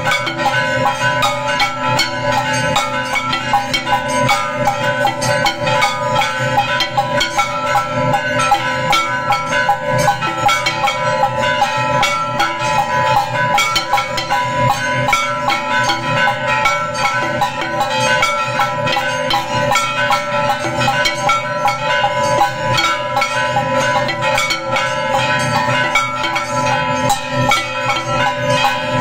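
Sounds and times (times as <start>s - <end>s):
bells ringing: 0.0s - 29.0s
drums and cymbals: 0.0s - 29.0s.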